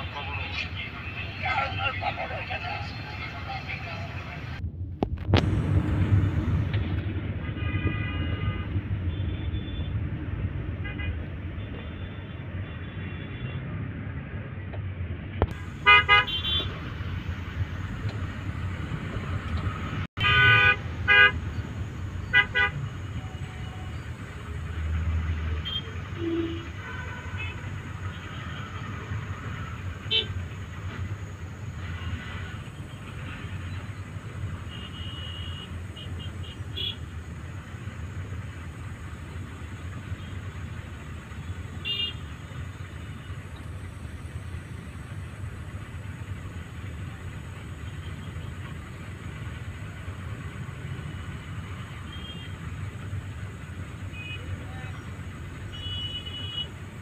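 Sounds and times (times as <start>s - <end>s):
low engine rumble: 0.0s - 12.8s, 14.4s - 57.0s
vehicle horns honking: 7.4s - 9.9s, 15.5s - 16.9s, 20.2s - 21.5s, 22.2s - 24.1s, 25.5s - 28.9s, 30.0s - 30.4s, 31.8s - 37.1s, 41.4s - 43.4s, 52.0s - 52.7s, 54.1s - 55.0s, 55.6s - 56.8s.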